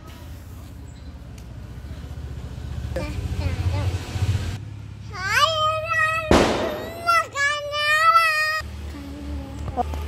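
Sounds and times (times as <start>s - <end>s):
small child singing: 5.1s - 9.8s.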